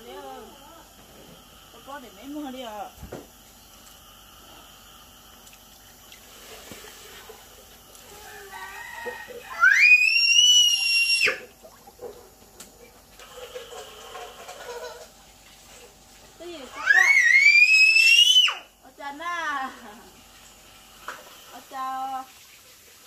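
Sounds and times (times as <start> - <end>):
loud high-pitched cries: 8.3 - 11.5, 16.7 - 18.7.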